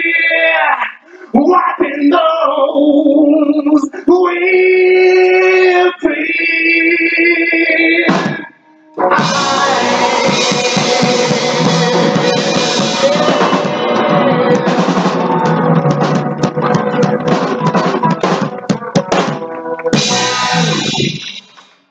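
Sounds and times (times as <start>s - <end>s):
live soul band playing: 9.0s - 21.2s
drum hits and fills: 9.1s - 21.7s.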